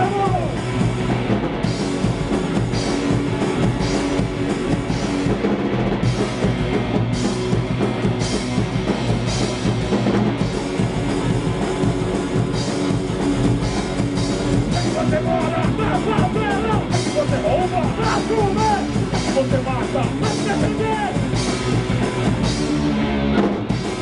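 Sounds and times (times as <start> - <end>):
punk band playing live: 0.0 - 24.0.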